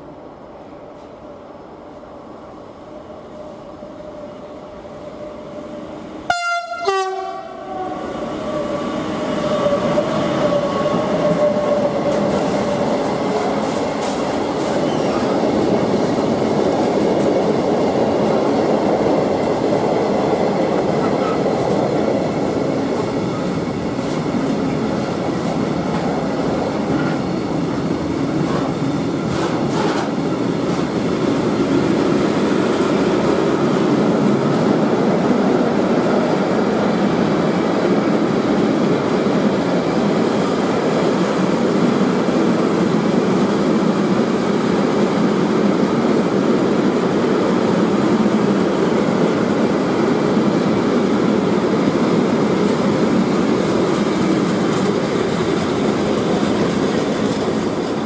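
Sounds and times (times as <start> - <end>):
locomotive horn blast: 6.3 - 7.8
train wheels rumbling on rails: 7.8 - 58.0.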